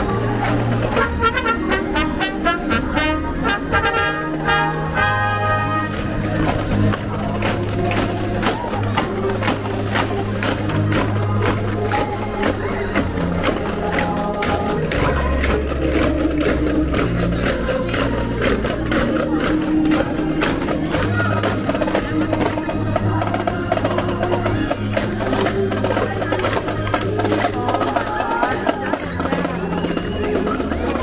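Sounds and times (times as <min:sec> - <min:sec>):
bass notes: 0:00.0 - 0:31.0
marching drum rhythm: 0:00.0 - 0:31.0.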